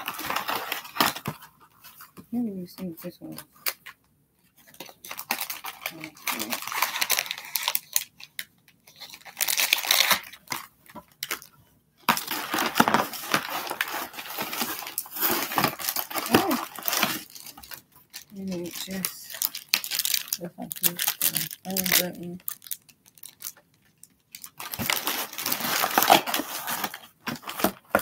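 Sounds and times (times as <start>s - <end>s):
plastic bag crinkling: 0.0s - 1.4s, 4.8s - 28.0s
person speaking: 2.2s - 3.5s, 5.8s - 6.7s, 16.1s - 17.2s, 18.2s - 19.6s, 20.2s - 22.6s.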